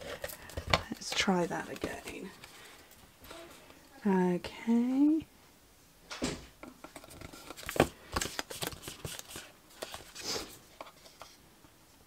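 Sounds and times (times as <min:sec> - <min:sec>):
card and paper rustling: 0:00.0 - 0:03.6, 0:07.0 - 0:11.4.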